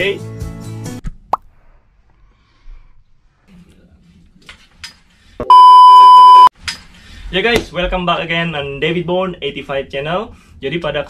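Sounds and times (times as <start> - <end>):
steady electronic test tone beep: 5.5 - 6.5.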